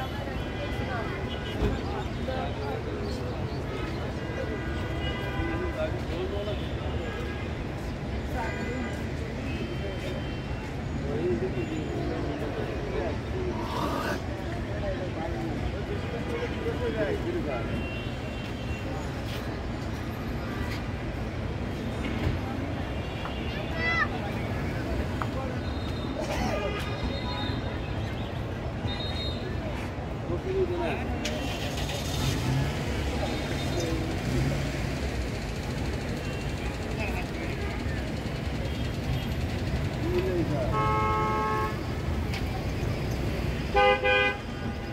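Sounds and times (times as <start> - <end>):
traffic rumble: 0.0 - 44.9
people talking: 29.4 - 40.9
traffic engine hum: 29.5 - 44.9.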